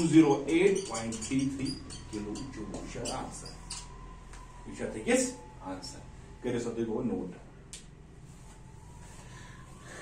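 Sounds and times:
marker squeaking on whiteboard: 0.0 - 4.1.

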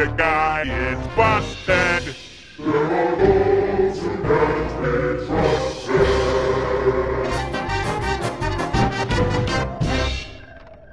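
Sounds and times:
choir singing long held notes: 0.0 - 7.8.

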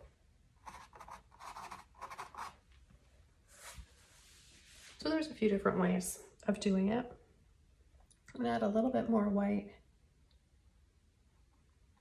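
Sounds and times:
paintbrush strokes on canvas: 3.5 - 5.2.

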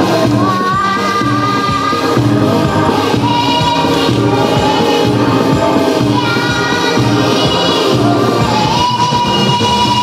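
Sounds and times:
choir voices: 0.0 - 10.0
girl singing into a microphone: 0.0 - 10.0
steady beat: 0.0 - 10.0.

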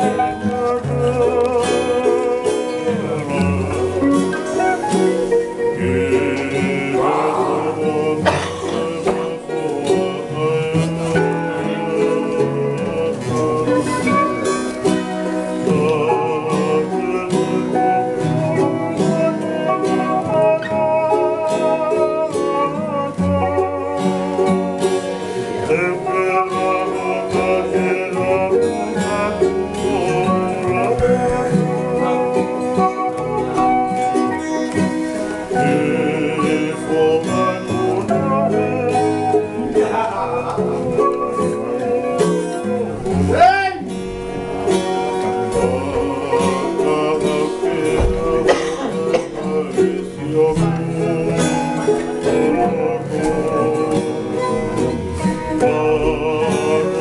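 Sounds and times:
acoustic guitar plucked and strummed: 0.0 - 57.0
man singing: 0.0 - 57.0.

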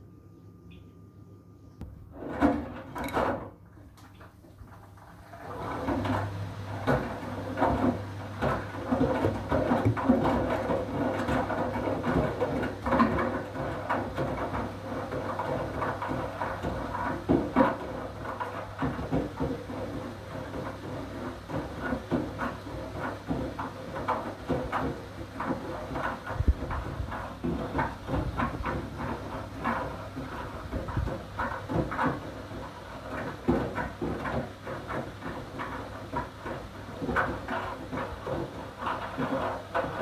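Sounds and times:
washing machine motor hum: 0.0 - 40.0
laundry clattering in drum: 2.1 - 40.0.

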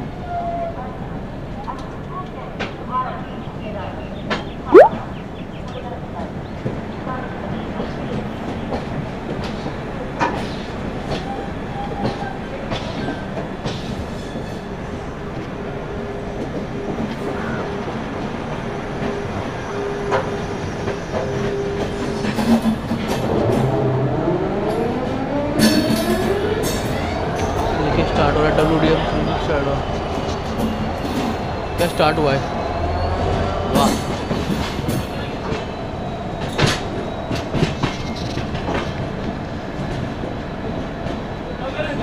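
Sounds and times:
train wheels rumbling on rail: 5.4 - 42.0.

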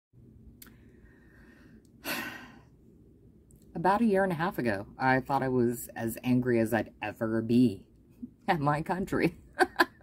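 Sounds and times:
woman sighing: 2.0 - 2.7.

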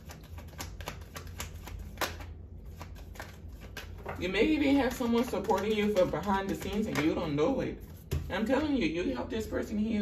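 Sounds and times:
cards being shuffled: 0.0 - 8.3.

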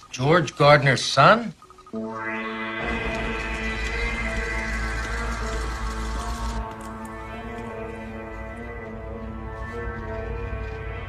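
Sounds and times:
film score music: 1.6 - 11.0
deep rumble and hiss: 2.6 - 11.0.

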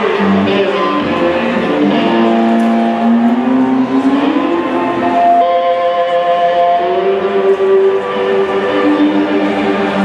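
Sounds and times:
electric blues band playing: 0.0 - 10.0.

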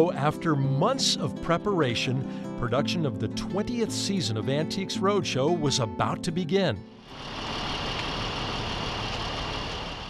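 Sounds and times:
diesel engine idling: 7.0 - 10.0.

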